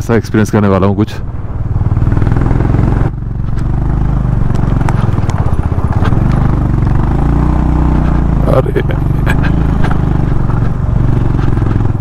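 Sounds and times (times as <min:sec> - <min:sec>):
motorcycle engine thumping: 0:01.8 - 0:12.0.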